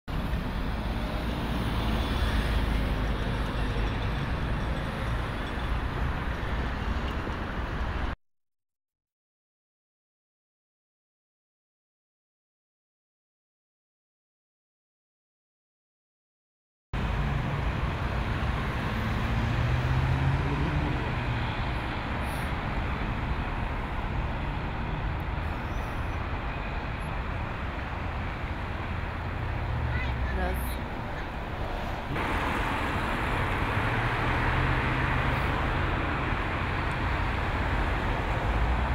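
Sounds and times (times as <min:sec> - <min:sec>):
passing cars: 0:00.1 - 0:08.2, 0:17.0 - 0:38.9
road traffic rumble: 0:00.1 - 0:08.2, 0:17.0 - 0:38.9
low engine hum: 0:17.0 - 0:38.9.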